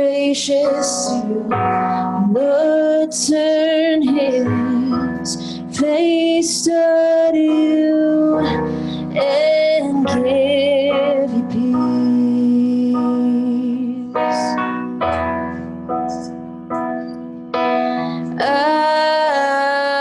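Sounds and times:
woman singing with vibrato: 0:00.0 - 0:14.6, 0:18.2 - 0:20.0
electric keyboard chords: 0:00.0 - 0:20.0.

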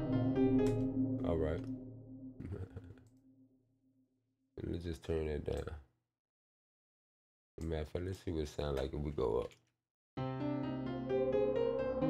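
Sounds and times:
low held synth note: 0:00.0 - 0:03.6.

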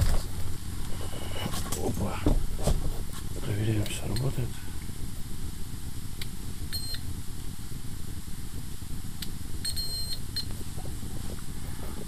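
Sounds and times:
steady low rumble: 0:00.0 - 0:12.0
electrical tester beeps: 0:06.7 - 0:07.1, 0:09.6 - 0:10.6.

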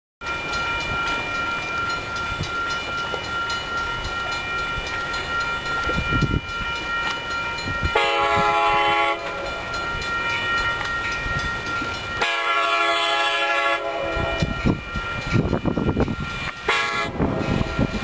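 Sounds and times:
crossing signal bell ringing: 0:00.2 - 0:18.0
train horn blast: 0:07.9 - 0:09.6, 0:12.2 - 0:14.6, 0:16.7 - 0:17.9.

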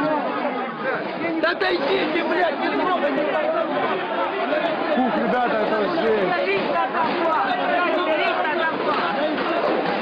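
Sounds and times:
crowd talking and shouting: 0:00.0 - 0:10.0.

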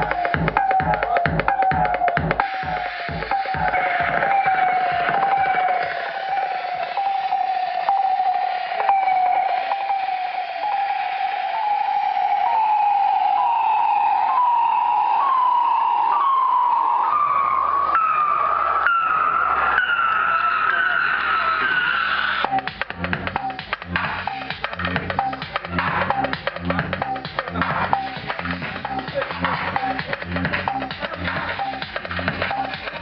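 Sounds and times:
drums: 0:00.0 - 0:08.1, 0:20.8 - 0:33.0
repeating falling synth note: 0:00.0 - 0:21.5
minimal techno music: 0:00.0 - 0:33.0
low bass tone: 0:22.5 - 0:32.8.

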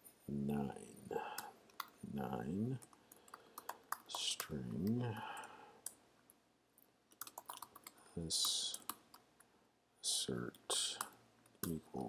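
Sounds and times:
person speaking: 0:00.0 - 0:06.0, 0:07.2 - 0:09.2, 0:10.0 - 0:12.0
laptop keyboard keystrokes: 0:02.8 - 0:06.0, 0:07.1 - 0:09.2.

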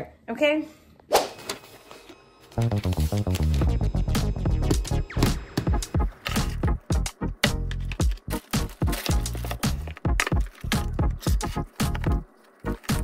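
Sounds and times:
music with percussive beat: 0:02.8 - 0:12.2.

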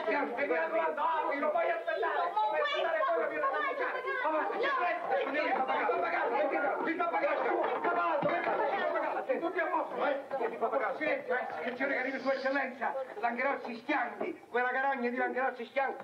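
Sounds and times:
overlapping voices talking: 0:00.0 - 0:14.6.

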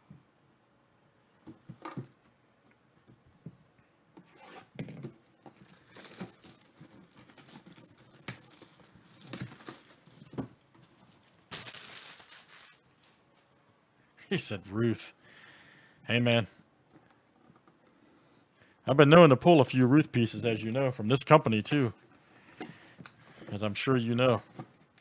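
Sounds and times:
cardboard ripping: 0:05.4 - 0:12.8.

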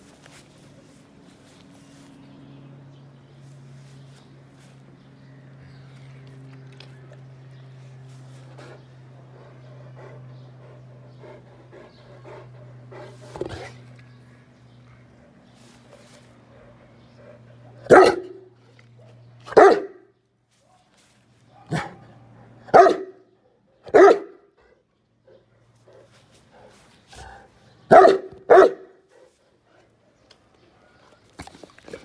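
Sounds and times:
dog barking: 0:17.8 - 0:20.1, 0:21.5 - 0:24.5, 0:27.9 - 0:29.0.

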